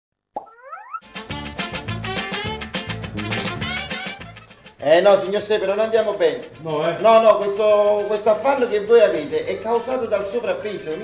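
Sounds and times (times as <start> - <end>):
cartoon pop: 0.3 - 1.0
upbeat jingle with drum beat: 1.0 - 4.8.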